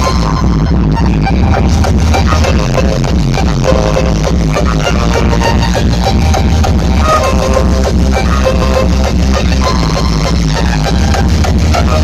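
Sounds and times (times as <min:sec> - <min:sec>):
hard electronic dance music: 0:00.0 - 0:12.0.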